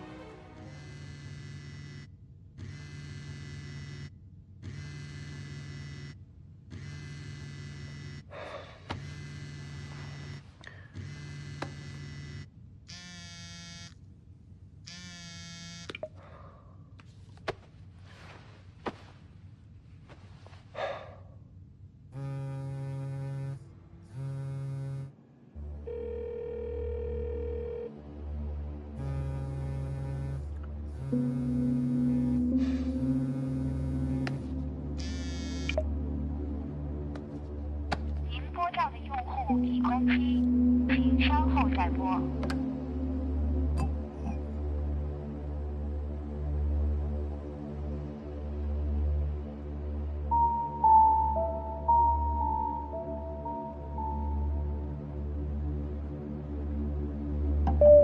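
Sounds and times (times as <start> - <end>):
low music drone: 0.0 - 2.1, 22.2 - 58.0
phone vibrating: 0.7 - 8.3, 9.0 - 14.0, 14.9 - 16.0, 22.2 - 25.1, 31.0 - 35.8.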